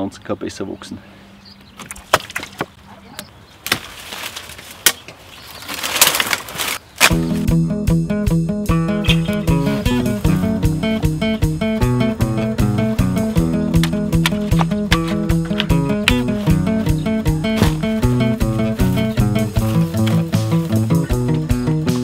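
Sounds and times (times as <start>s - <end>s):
rustling twigs and leaves: 1.7s - 7.5s, 14.3s - 21.1s
loppers snipping branches: 3.6s - 7.5s, 13.7s - 16.6s, 17.5s - 20.8s
plucked string music with beat: 7.1s - 22.0s.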